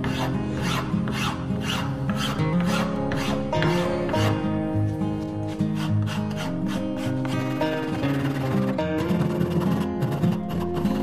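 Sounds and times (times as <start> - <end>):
abrasive tool rubbing wood: 0.0 - 4.4, 5.5 - 11.0
acoustic guitar music: 0.0 - 11.0.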